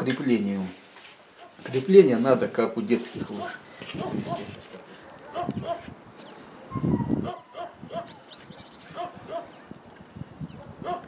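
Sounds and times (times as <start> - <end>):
dog barking: 3.4 - 5.9, 6.6 - 8.2, 8.9 - 9.6, 10.6 - 11.0.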